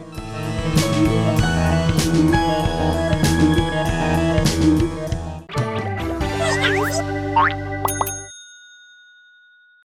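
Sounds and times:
jingle music: 6.4s - 9.6s
bright ding: 7.9s - 9.8s.

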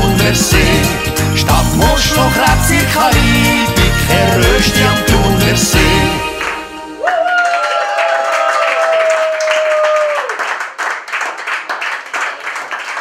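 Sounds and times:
long held high note: 6.1s - 8.2s
small group clapping: 6.4s - 13.0s.

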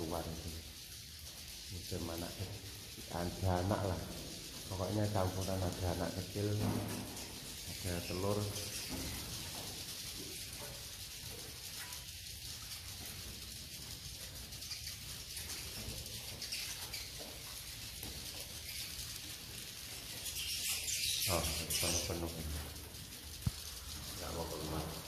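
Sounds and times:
swiftlets twittering: 0.0s - 25.0s
wing flutter: 0.0s - 25.0s.

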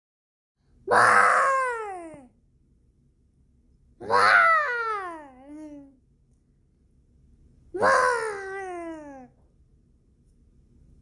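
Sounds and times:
child imitating dinosaur cry: 0.9s - 2.3s, 4.0s - 6.0s, 7.8s - 9.3s.

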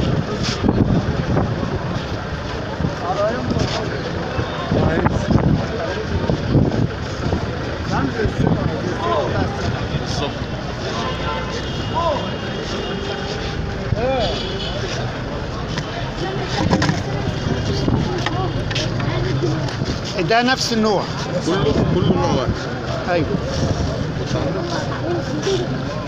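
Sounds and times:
people talking: 0.0s - 26.0s.

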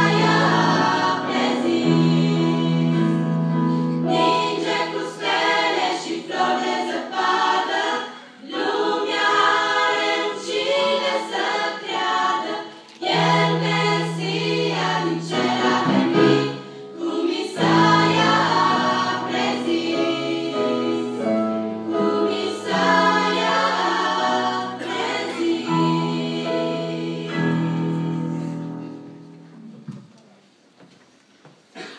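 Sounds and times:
girls' choir singing a hymn: 0.0s - 28.9s.

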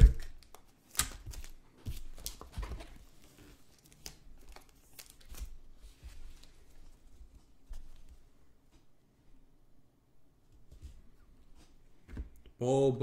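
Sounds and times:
card packaging tearing and crinkling: 0.0s - 5.6s.

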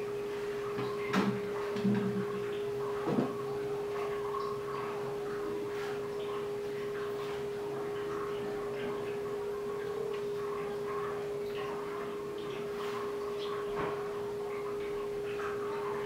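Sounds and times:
steady hum: 0.0s - 16.0s.

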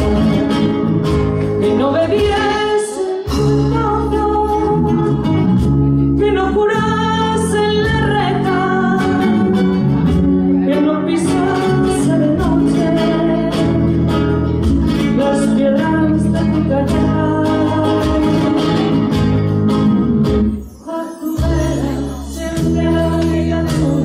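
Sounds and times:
acoustic guitar: 0.0s - 24.0s
woman singing: 1.6s - 19.4s, 20.6s - 24.0s.

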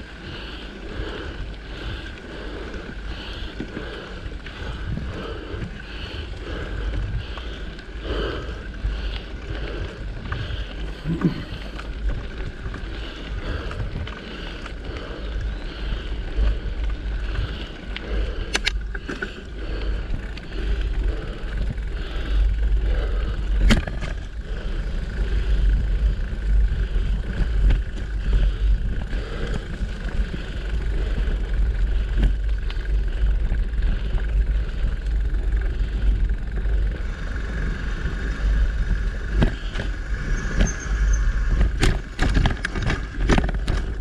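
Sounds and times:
wind buffeting microphone: 0.0s - 18.9s
bike tyres on dirt: 0.0s - 44.0s
bike clicks and knocks: 1.0s - 37.1s, 38.4s - 44.0s.

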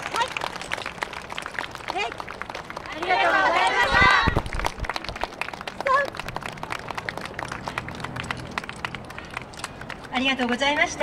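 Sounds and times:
crowd shouting together: 2.9s - 4.4s.

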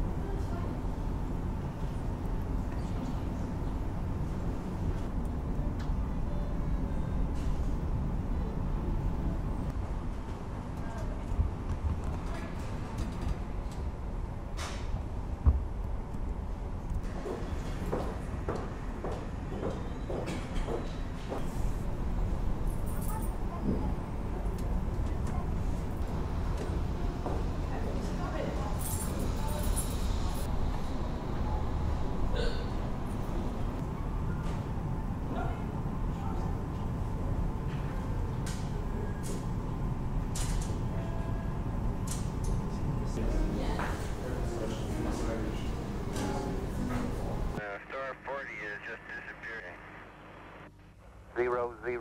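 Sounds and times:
faint indistinct voices: 22.7s - 32.7s, 42.6s - 49.9s
indistinct voices in echoing room: 42.7s - 49.8s
band-limited radio voice: 47.6s - 50.1s, 51.3s - 52.0s.

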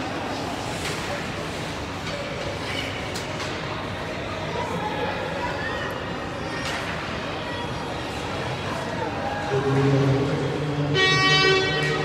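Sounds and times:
arena noise: 0.0s - 12.0s.

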